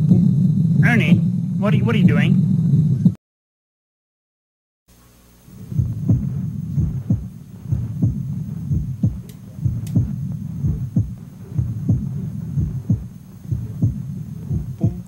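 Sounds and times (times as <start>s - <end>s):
low hum: 0.0s - 3.2s, 5.4s - 15.0s
cartoon heartbeat thumps: 5.7s - 15.0s.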